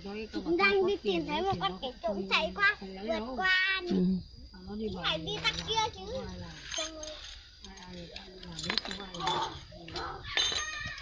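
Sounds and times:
metal parts and tools clinking: 5.4 - 11.0.

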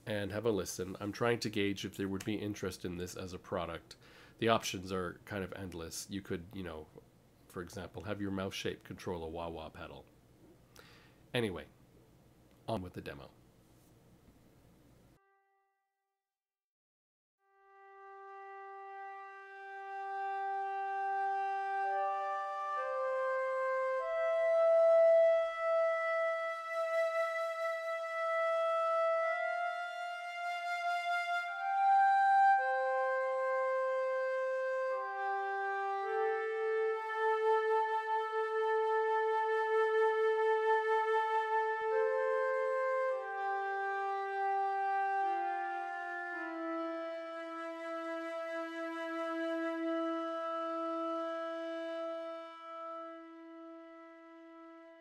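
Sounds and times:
orchestral woodwinds and flutes: 17.6 - 55.0.

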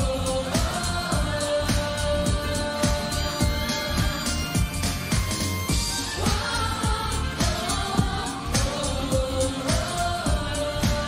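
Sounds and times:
kick-drum beat: 0.0 - 11.0
person singing: 0.0 - 11.0
synth pads: 0.0 - 11.0.

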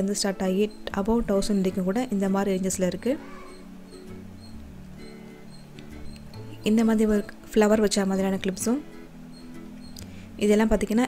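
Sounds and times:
faint steady background tone: 0.0 - 11.0
faint high squeaks: 3.0 - 7.4.

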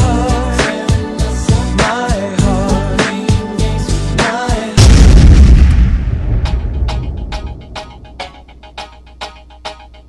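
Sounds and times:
dance music: 0.0 - 4.8
deep boom hit: 4.8 - 8.2.

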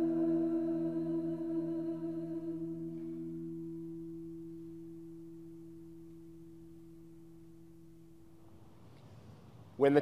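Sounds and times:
choir singing chord: 0.0 - 5.1
low pure held note: 0.0 - 8.7.

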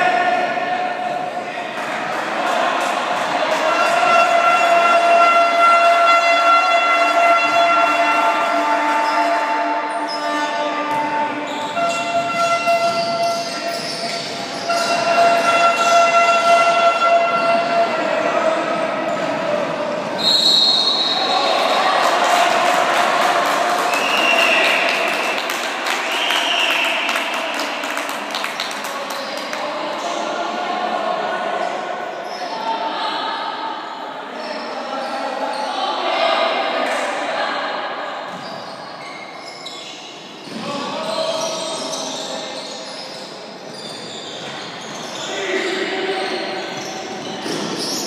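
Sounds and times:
people calling out in a hall: 0.0 - 48.0
people calling out: 3.4 - 25.3.

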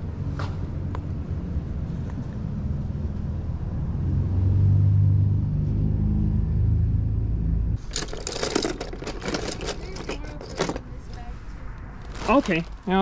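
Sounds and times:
vehicle engine rumble: 0.0 - 13.0
hard objects clicking and rattling: 7.8 - 11.3.

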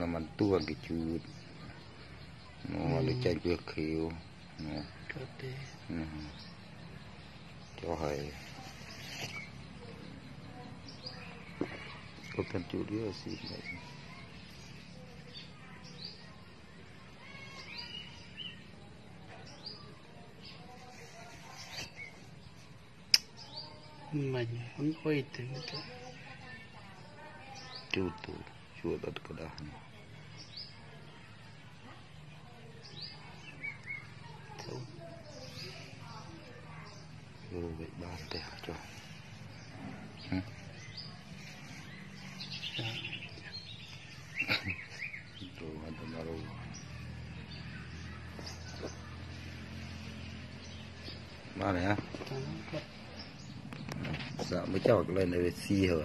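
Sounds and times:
small birds chirping: 0.0 - 56.0.

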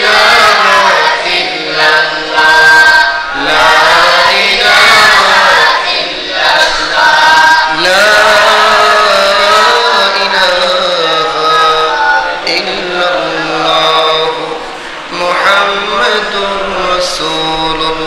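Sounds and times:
man chanting devotional recitation: 0.0 - 18.0.

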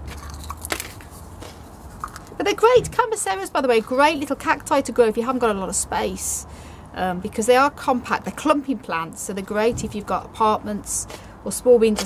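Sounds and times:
faint crunches and clicks: 0.0 - 2.4
plastic plant pots handled: 0.0 - 4.8.

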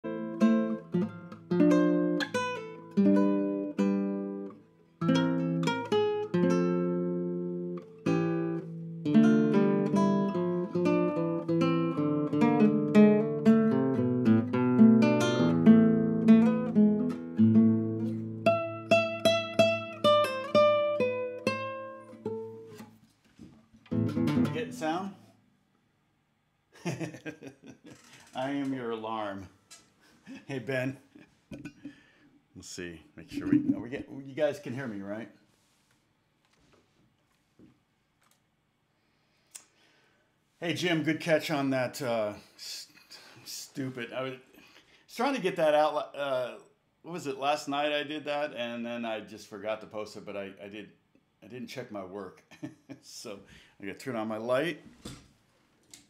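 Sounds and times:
acoustic guitar playing: 0.0 - 23.0, 23.8 - 25.3, 33.3 - 34.2
man talking: 24.5 - 25.2, 28.4 - 29.6, 30.3 - 31.1, 32.6 - 35.4, 40.6 - 44.5, 45.1 - 54.8.

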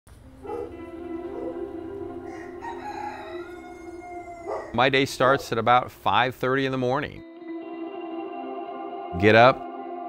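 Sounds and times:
soft background music: 0.1 - 10.0
rooster crowing: 0.4 - 4.8.

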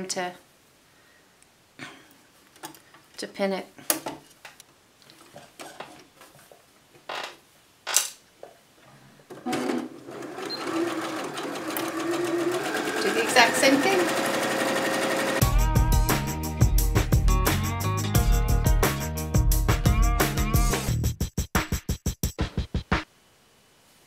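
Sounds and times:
sewing machine stitching: 9.3 - 15.4
music: 15.3 - 23.1.

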